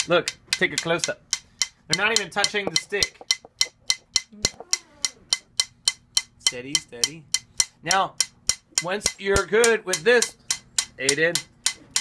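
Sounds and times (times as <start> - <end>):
drumstick ticks: 0.0 - 12.0.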